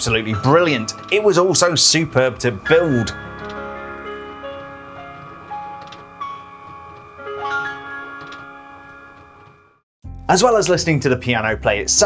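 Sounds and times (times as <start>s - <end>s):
slow piano melody: 0.0s - 10.3s
toy piano keys clicking: 6.8s - 9.5s.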